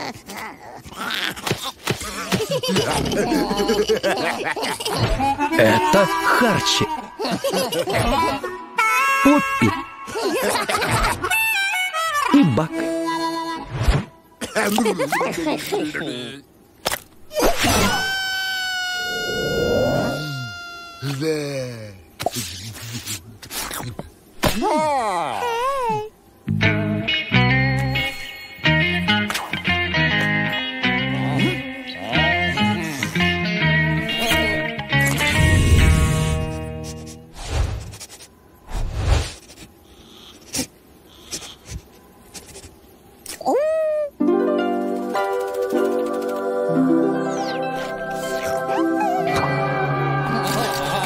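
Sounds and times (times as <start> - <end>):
cartoon lizard high-pitched wail: 17.3 - 21.1.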